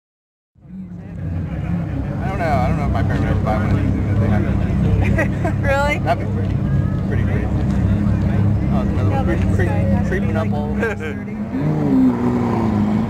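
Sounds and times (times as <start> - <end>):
car engine idling: 0.6 - 12.0
people talking: 0.7 - 11.9.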